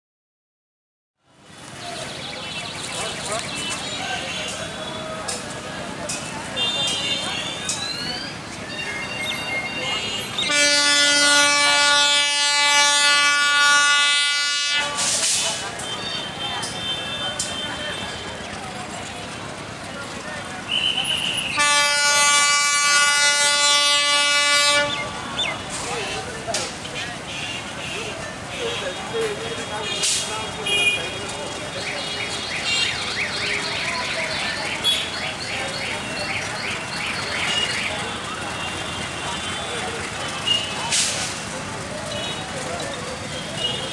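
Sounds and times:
diesel locomotive rumble: 1.3 - 43.9
train horn blast: 10.0 - 15.5, 20.9 - 25.4.

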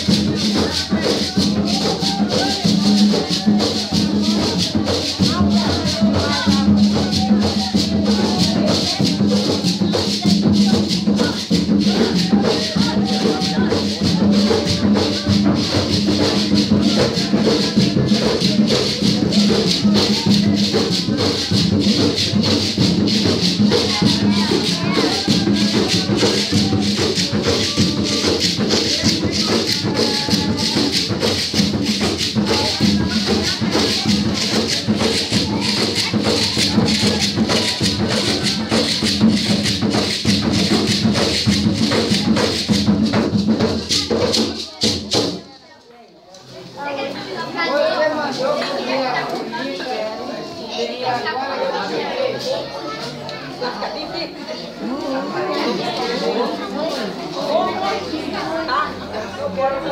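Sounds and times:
rattles shaken rhythmically: 0.0 - 45.6, 47.0 - 53.7
voices: 0.0 - 59.9.

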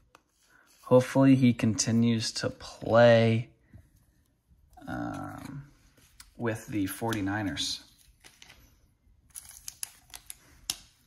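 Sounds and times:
plastic wrapper crinkling: 6.1 - 11.0.

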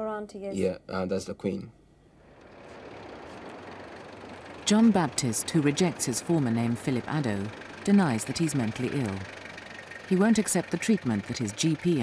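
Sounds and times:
van engine and tyre noise: 2.2 - 12.0.

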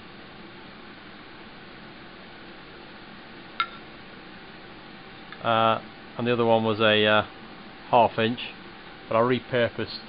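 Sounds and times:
low room hiss: 0.0 - 10.0
metallic clink of steel tool: 3.6 - 3.9.

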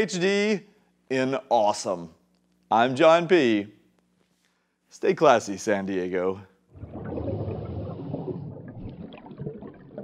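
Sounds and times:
water bubbling pops: 6.7 - 10.0.

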